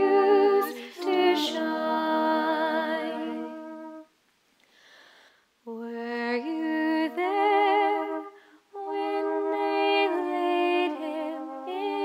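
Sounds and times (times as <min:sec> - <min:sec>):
woman singing with vibrato: 0:00.0 - 0:04.1, 0:05.7 - 0:12.0
soft breath: 0:04.6 - 0:05.6, 0:08.3 - 0:08.7.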